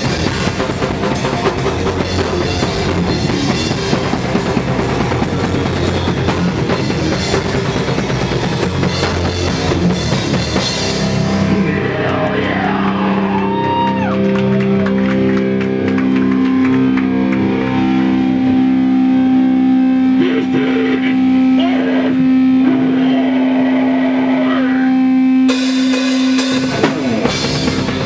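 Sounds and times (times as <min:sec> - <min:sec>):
distorted electric guitar drone: 0:00.0 - 0:28.0
crowd voices: 0:11.2 - 0:18.8.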